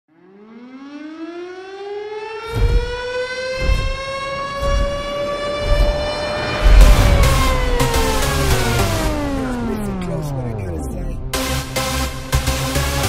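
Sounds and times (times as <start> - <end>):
siren-like synth tone: 0.1 - 11.3
heavy kick drum: 5.6 - 9.4.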